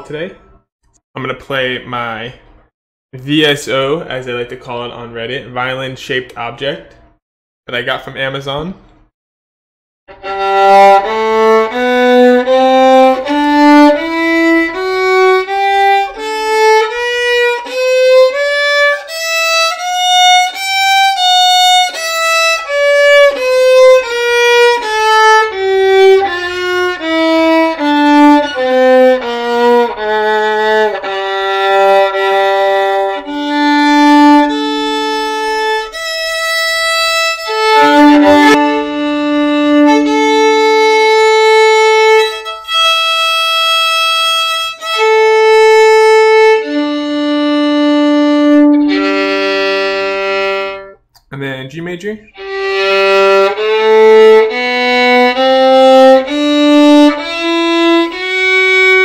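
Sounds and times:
bowed violin: 10.1s - 51.0s, 52.2s - 59.0s.

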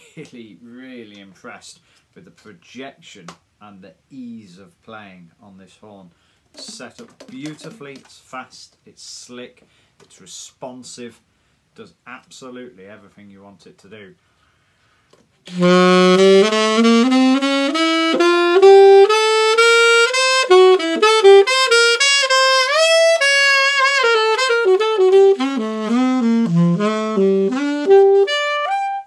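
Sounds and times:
alto saxophone fast run: 15.5s - 29.0s.

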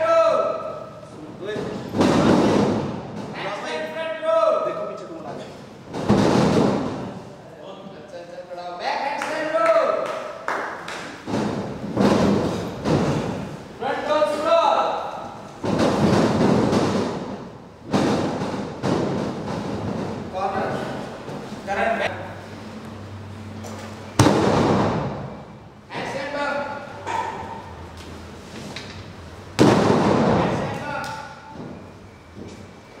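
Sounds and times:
body crashing onto wrestling ring: 29.6s - 30.6s.

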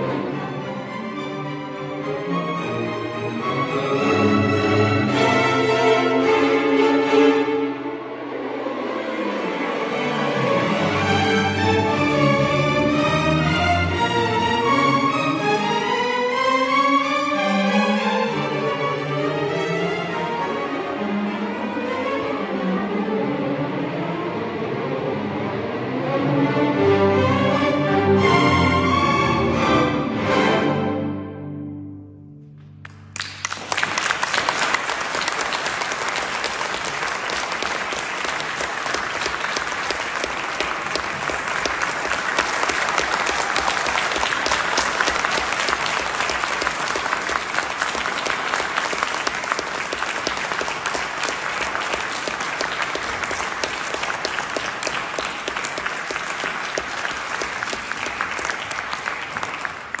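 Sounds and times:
audience applause: 32.8s - 60.0s.

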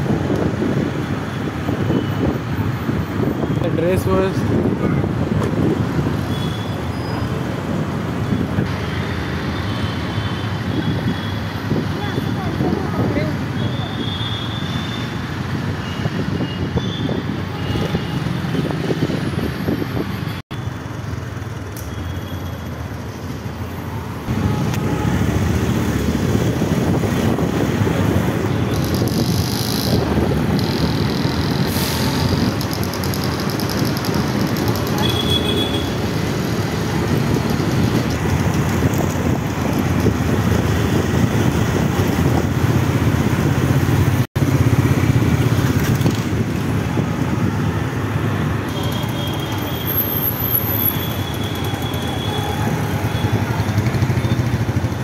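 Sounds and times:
motorcycle engines: 0.0s - 22.0s, 22.6s - 55.0s
car engines: 0.0s - 55.0s
road noise: 0.0s - 55.0s.

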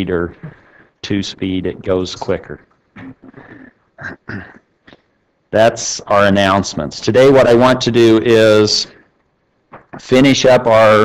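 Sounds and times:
people talking: 0.0s - 4.5s, 5.6s - 8.9s, 9.8s - 11.0s.

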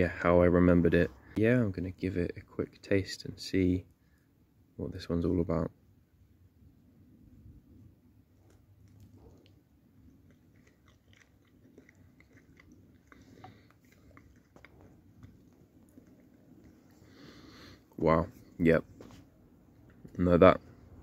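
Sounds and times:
person chewing fruit: 8.3s - 19.0s
soft mouth clicks: 10.3s - 17.0s.

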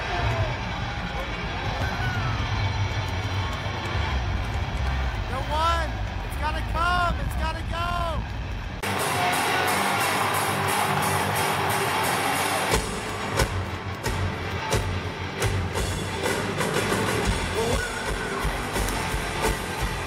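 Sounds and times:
drums and bass hits: 8.3s - 20.0s
live rock band playing: 8.8s - 20.0s.

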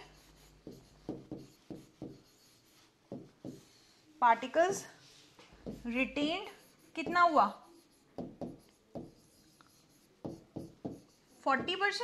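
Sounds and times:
pen strokes on whiteboard screen: 0.0s - 12.0s.

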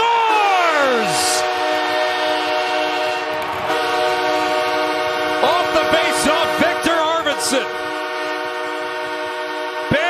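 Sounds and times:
crowd cheering: 0.0s - 10.0s
goal horn: 0.2s - 10.0s.

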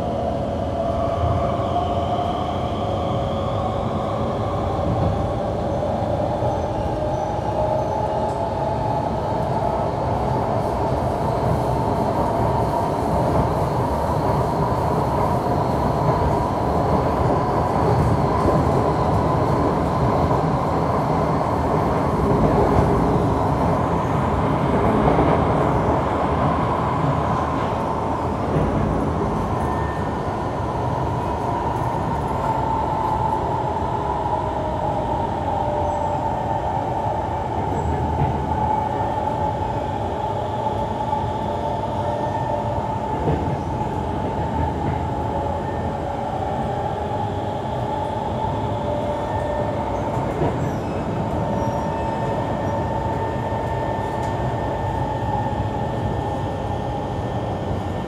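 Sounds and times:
train wheels rumbling on rail: 0.0s - 58.0s
train whine: 0.0s - 58.0s.

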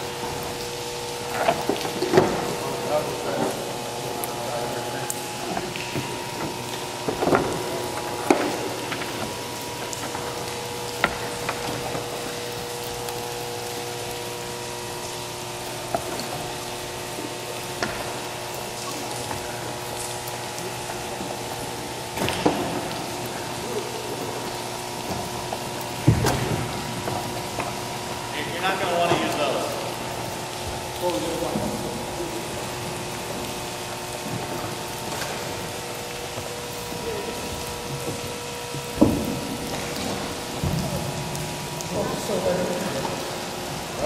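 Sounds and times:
steady hiss: 0.0s - 44.0s.

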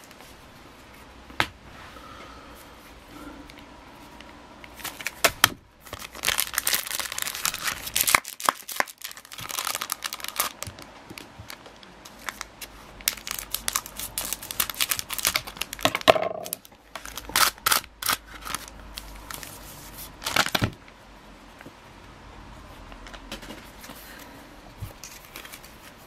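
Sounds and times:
foil pack crinkling: 4.8s - 10.9s, 11.5s - 20.7s.

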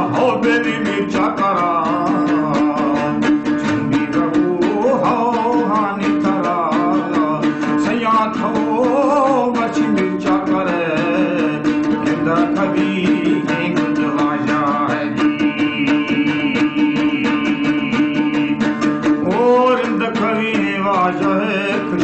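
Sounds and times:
person singing: 0.0s - 22.0s
plucked strings: 0.0s - 22.0s.

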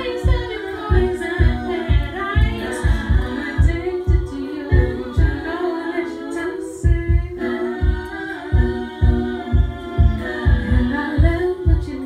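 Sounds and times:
steady low beat: 0.0s - 12.0s
woman singing a cappella: 0.0s - 12.0s.

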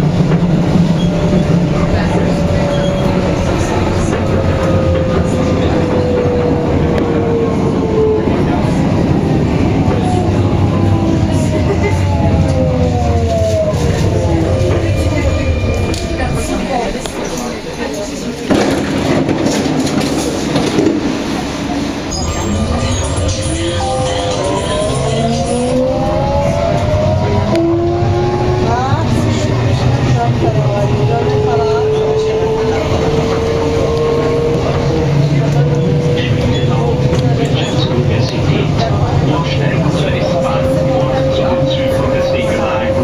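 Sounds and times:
metro train motor hum: 0.0s - 43.0s.

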